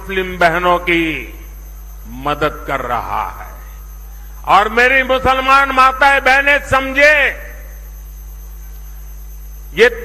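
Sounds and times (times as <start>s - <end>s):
electrical mains hum: 0.0s - 10.0s
faint high whine: 0.0s - 10.0s
man speaking: 9.8s - 10.0s.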